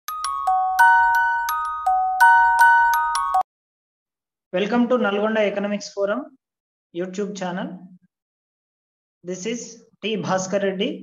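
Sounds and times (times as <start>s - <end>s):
bell-like jingle: 0.1s - 3.4s.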